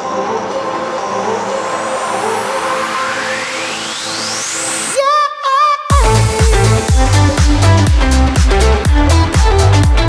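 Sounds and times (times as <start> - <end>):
rising noise sweep: 0.0 - 5.0
electronic dance music: 0.0 - 10.0.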